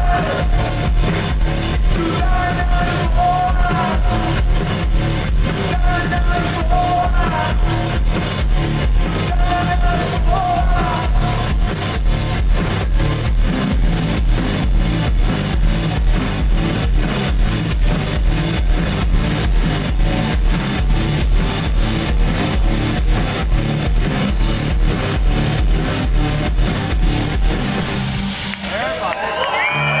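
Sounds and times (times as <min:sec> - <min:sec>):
drums fast beat: 0:00.0 - 0:30.0
live rock band playing: 0:00.0 - 0:30.0
crowd cheering: 0:26.8 - 0:30.0.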